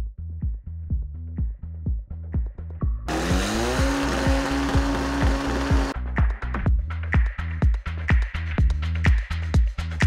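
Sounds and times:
racing car engine at full throttle: 3.1 - 6.0.

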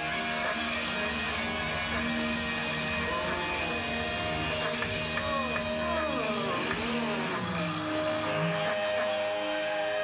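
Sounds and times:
distorted electric guitar sliding: 0.0 - 10.0
heavy metal band playing: 0.0 - 10.0.

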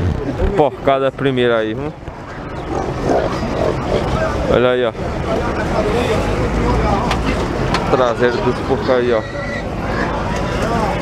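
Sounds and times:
young pigs grunting: 2.3 - 4.5, 8.8 - 10.7.

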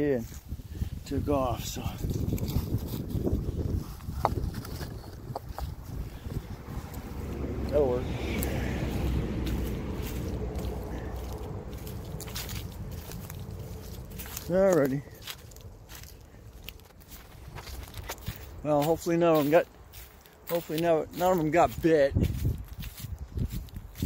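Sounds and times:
wind buffeting microphone: 0.0 - 19.1, 21.1 - 24.0
footsteps crunching dry grass: 0.0 - 24.0.

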